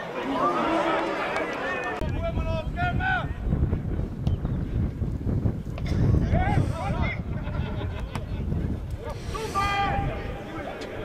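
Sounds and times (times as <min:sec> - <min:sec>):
wind rumbling on microphone: 0:02.0 - 0:11.0
distant people shouting: 0:09.1 - 0:11.0.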